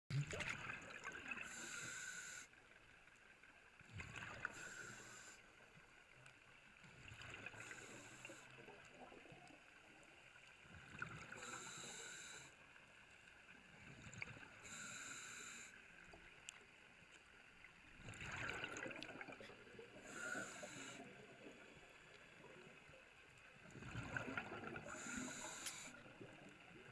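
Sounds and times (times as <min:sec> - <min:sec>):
exhaled bubbles underwater: 0:00.1 - 0:01.6, 0:03.9 - 0:04.7, 0:18.0 - 0:21.7, 0:23.6 - 0:26.9
regulator breathing hiss: 0:01.4 - 0:02.6, 0:04.5 - 0:05.5, 0:07.6 - 0:08.6, 0:11.3 - 0:12.6, 0:14.6 - 0:15.8, 0:20.0 - 0:21.2, 0:24.9 - 0:26.0.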